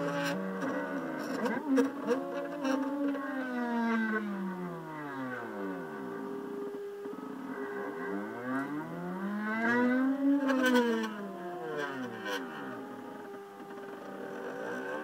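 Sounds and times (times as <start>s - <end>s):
stepper motors whining: 0.0s - 15.0s.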